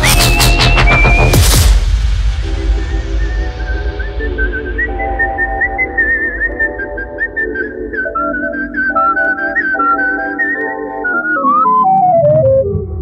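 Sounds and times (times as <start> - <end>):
whistled lead melody: 0.0 - 1.8, 2.5 - 12.7
heavy bass: 0.0 - 8.0
electronic dance music: 0.0 - 12.7.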